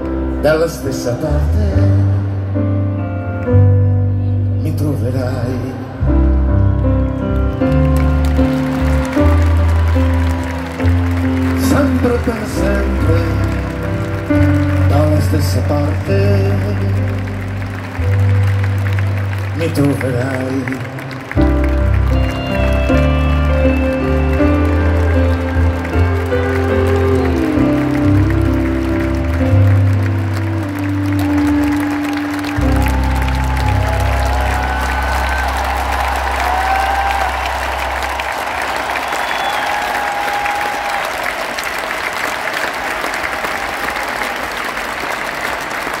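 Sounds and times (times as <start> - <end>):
stadium crowd applauding and cheering: 0.0 - 46.0
rock band playing: 6.5 - 19.6, 21.2 - 36.7.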